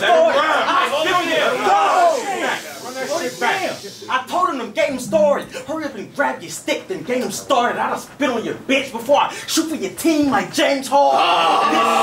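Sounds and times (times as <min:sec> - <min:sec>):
man rapping into a microphone: 0:02.8 - 0:11.1.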